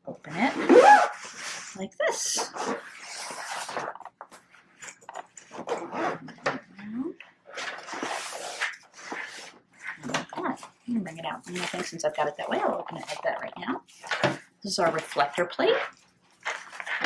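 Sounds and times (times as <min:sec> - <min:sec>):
zipper rasping: 0:00.3 - 0:04.0, 0:05.4 - 0:07.1.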